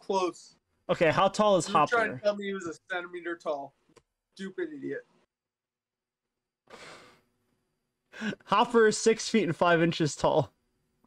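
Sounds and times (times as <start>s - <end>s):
breathy sigh: 6.7s - 7.3s.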